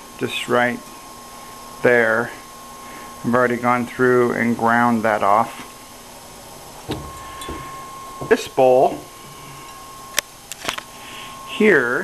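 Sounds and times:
faint steady hum: 0.0s - 12.0s
pottery bowls knocking: 6.9s - 8.4s.

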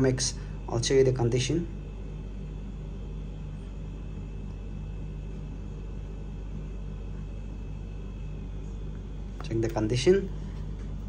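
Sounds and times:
low background hum and rumble: 0.0s - 11.0s.

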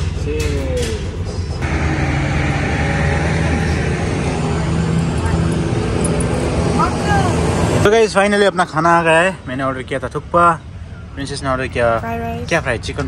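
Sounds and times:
engine running: 0.0s - 7.9s.

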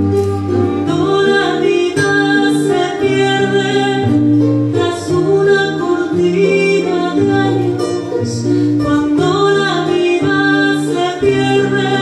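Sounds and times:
acoustic guitar: 0.0s - 12.0s
strummed charango: 0.0s - 12.0s
woman singing slow melody: 0.6s - 12.0s.

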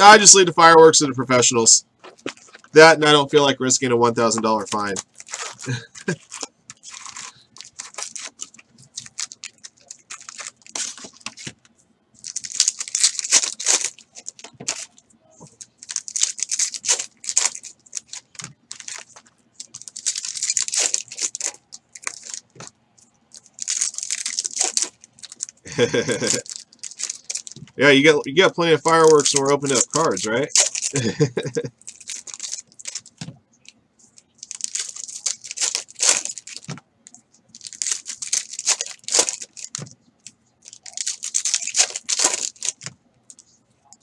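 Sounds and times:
foil wrappers tearing and crinkling: 4.2s - 11.6s, 12.2s - 22.7s, 23.3s - 28.0s, 28.8s - 33.2s, 34.2s - 36.8s, 37.5s - 39.9s, 40.6s - 43.4s.

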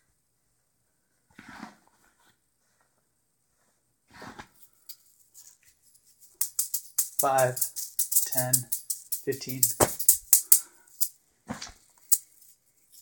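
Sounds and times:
juggling balls clicking: 4.9s - 11.1s, 12.0s - 13.0s.

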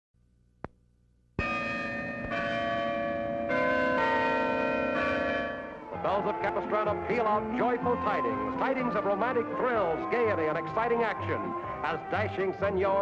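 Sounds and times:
church bells pealing: 1.4s - 13.0s.

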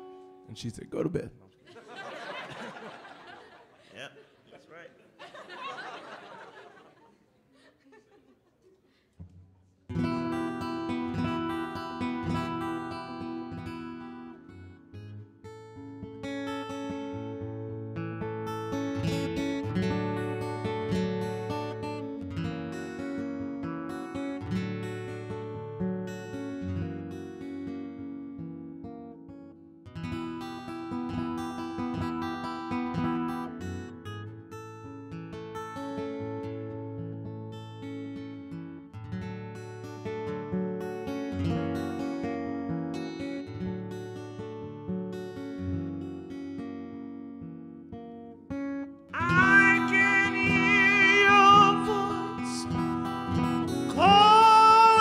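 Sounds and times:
acoustic guitar picked and strummed: 0.0s - 1.6s, 9.1s - 55.0s.

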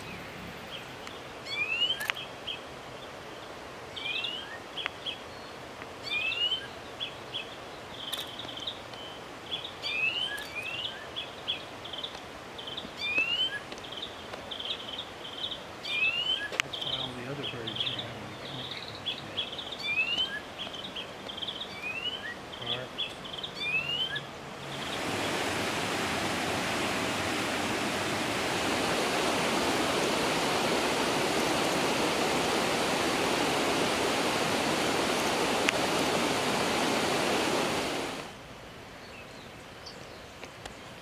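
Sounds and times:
forest birds chirping: 0.0s - 41.0s
loud rushing hiss: 24.6s - 38.4s.

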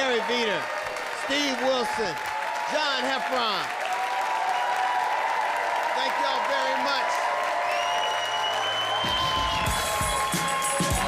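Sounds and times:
audience applauding: 0.0s - 11.0s
steady drum beat: 9.0s - 11.0s.

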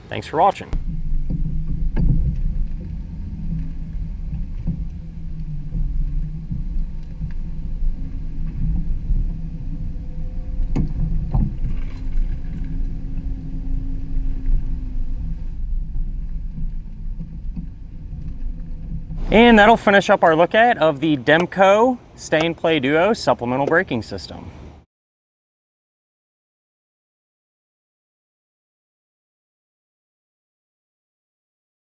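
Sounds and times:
engine and road rumble: 0.0s - 24.8s.

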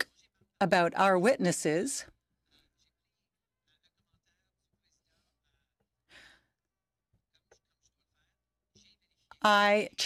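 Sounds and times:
faint short breath: 6.1s - 6.5s.

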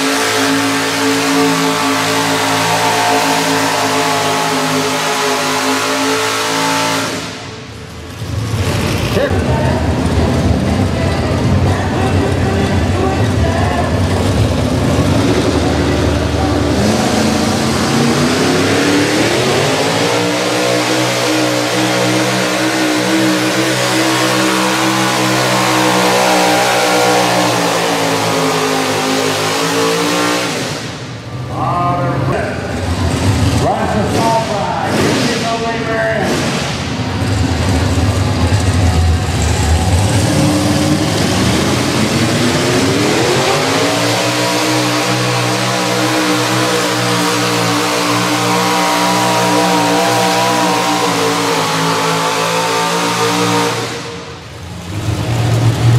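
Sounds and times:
tractor engine revving under load: 0.0s - 31.5s, 32.8s - 55.9s.

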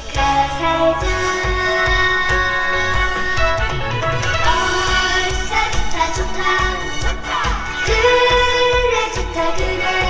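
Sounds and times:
song with steady beat: 0.0s - 10.0s.

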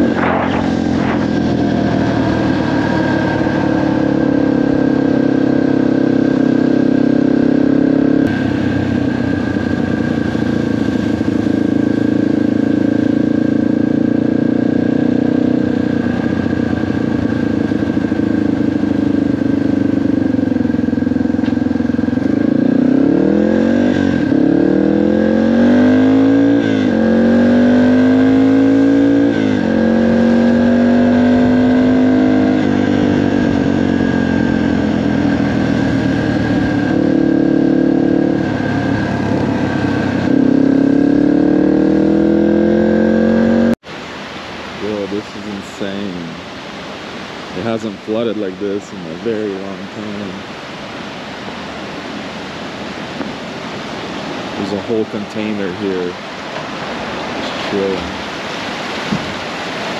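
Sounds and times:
dirt bike engine shifting gears: 0.0s - 3.7s.

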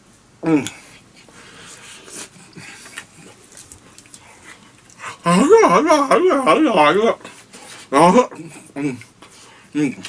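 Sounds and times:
man breathing and chewing: 0.6s - 5.3s
plastic wrap rustling: 3.0s - 4.4s.

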